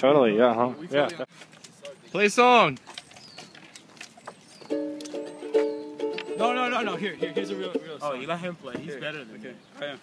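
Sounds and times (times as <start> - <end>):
ukulele strumming: 4.7 - 8.0.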